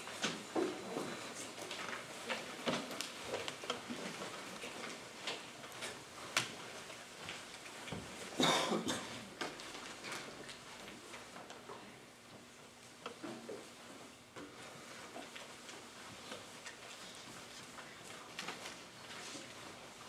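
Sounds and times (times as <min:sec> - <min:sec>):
people shifting in chairs: 0:00.0 - 0:11.7, 0:12.9 - 0:20.0.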